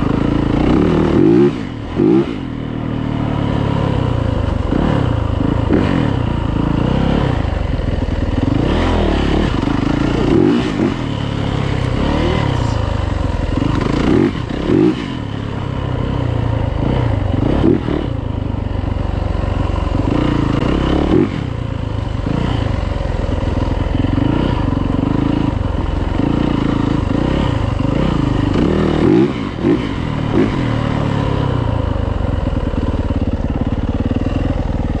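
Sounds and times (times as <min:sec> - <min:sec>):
dirt bike engine revving: 0:00.0 - 0:35.0.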